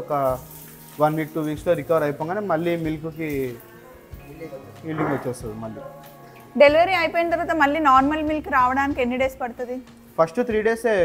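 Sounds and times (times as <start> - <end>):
man speaking: 4.4 - 5.9.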